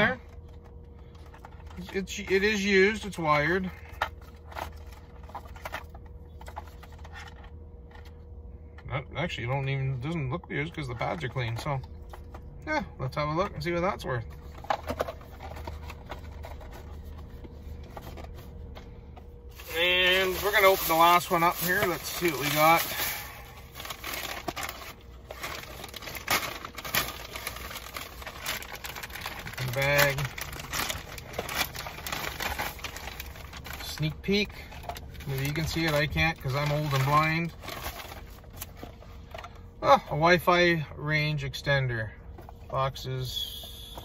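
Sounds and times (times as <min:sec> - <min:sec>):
low steady hum: 0:00.0 - 0:44.0
plastic bag crinkling: 0:19.5 - 0:39.4.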